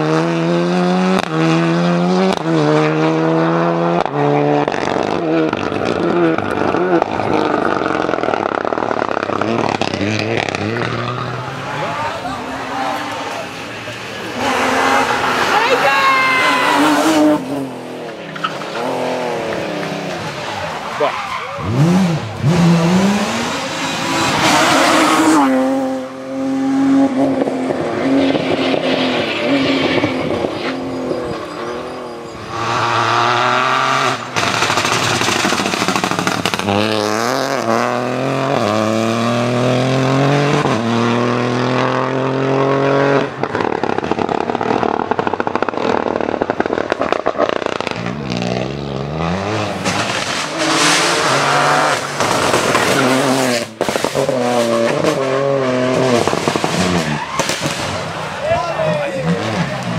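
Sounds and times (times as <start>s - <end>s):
rally car engines revving: 0.0s - 59.9s.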